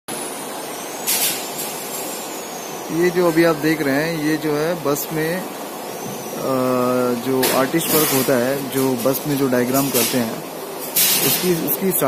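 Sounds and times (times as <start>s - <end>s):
workshop noise: 0.1s - 12.0s
compressed air hiss: 1.0s - 2.3s, 7.5s - 11.8s.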